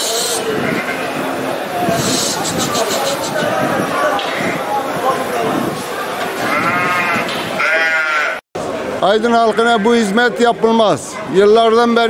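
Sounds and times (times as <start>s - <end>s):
market background noise: 0.0s - 12.0s
sheep bleating: 0.4s - 1.2s, 4.1s - 4.7s, 6.4s - 8.4s.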